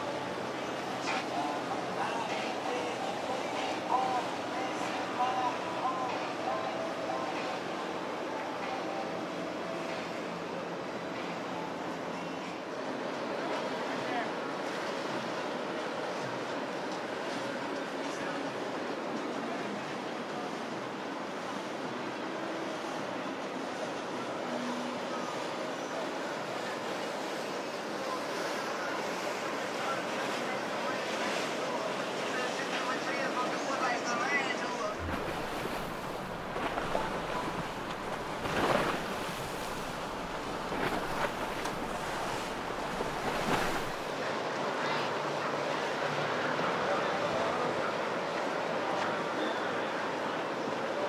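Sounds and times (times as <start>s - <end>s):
rushing churned water: 0.0s - 51.0s.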